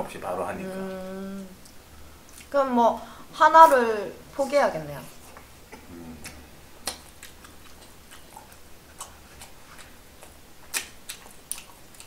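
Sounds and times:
people chewing: 5.1s - 12.0s
mouth clicks and smacks: 5.4s - 12.0s.

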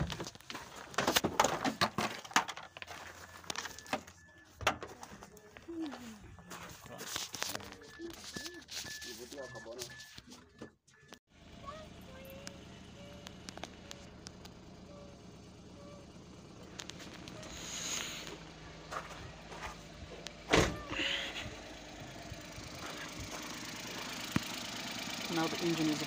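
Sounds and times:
car engine running: 0.0s - 26.0s
dashboard warning chime beeping: 2.6s - 11.2s
car door shutting: 20.4s - 21.1s.

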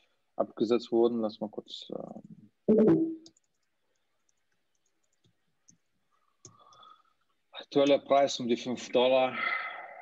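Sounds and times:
computer clicks: 3.2s - 6.9s.

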